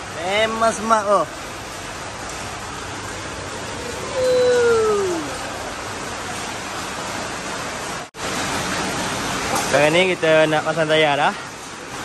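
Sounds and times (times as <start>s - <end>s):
workshop background hiss: 0.0s - 12.0s
falling vocal ooh: 3.8s - 5.4s.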